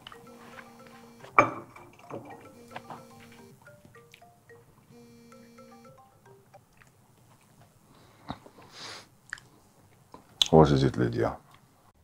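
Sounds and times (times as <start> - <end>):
marimba-like phone ringtone: 0.0 - 6.6.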